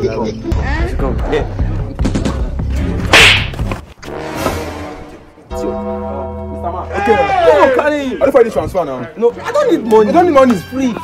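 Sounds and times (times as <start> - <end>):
swish: 3.1 - 3.6
hand slapping head: 3.1 - 3.7
soft background music: 4.1 - 11.0.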